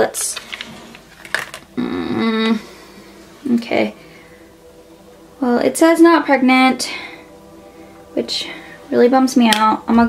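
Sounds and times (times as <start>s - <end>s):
woman humming: 1.8s - 2.8s.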